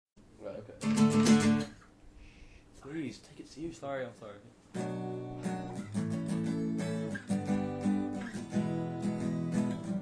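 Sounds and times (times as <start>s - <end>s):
acoustic guitar strummed: 0.8s - 1.8s, 4.7s - 10.0s.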